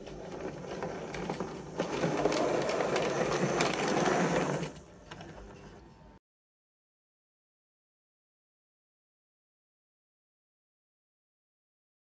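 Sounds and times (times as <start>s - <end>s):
wheels rumbling on rails: 0.0s - 4.8s
model train motor whirring: 0.0s - 5.5s.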